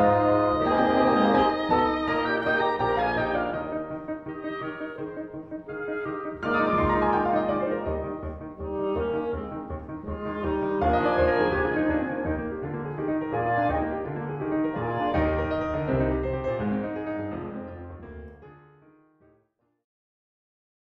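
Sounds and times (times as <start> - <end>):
classical chamber music: 0.0 - 18.9.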